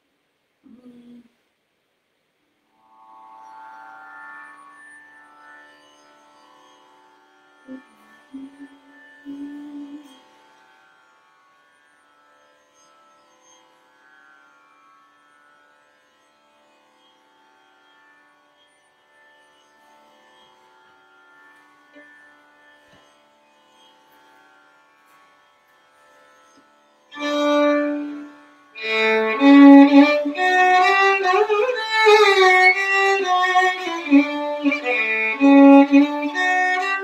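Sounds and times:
faint steady drone: 2.6s - 37.0s
violin melody with glides: 2.8s - 10.6s, 26.5s - 37.0s.

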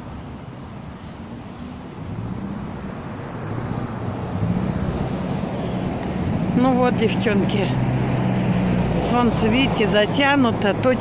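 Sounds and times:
vehicle engine hum and tyre noise: 0.0s - 11.0s.

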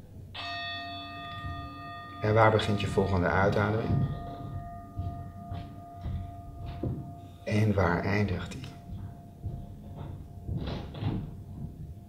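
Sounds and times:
meditation bell ringing: 0.3s - 12.0s.

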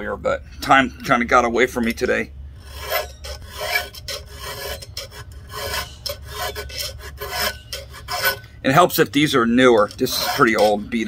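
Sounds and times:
file rasping on chainsaw chain: 2.6s - 8.5s, 9.6s - 11.0s.

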